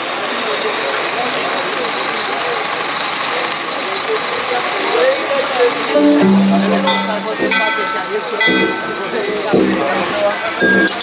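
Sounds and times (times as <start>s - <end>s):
crowd noise: 5.9s - 11.0s.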